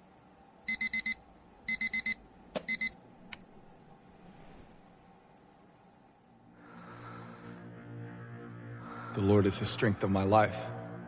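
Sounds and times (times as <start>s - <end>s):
electronic alarm beeping: 0.7s - 3.0s.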